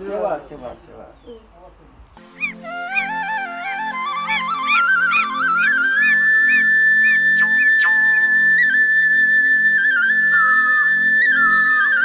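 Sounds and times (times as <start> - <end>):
low pulsing accompaniment: 2.2 - 12.0
high whistle-like lead note: 2.4 - 12.0.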